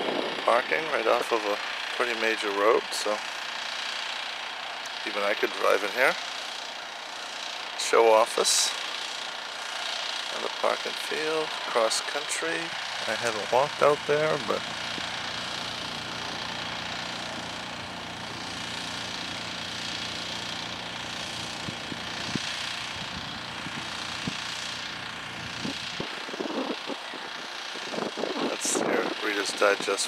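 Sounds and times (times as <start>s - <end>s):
vehicle engine running: 0.0s - 30.0s.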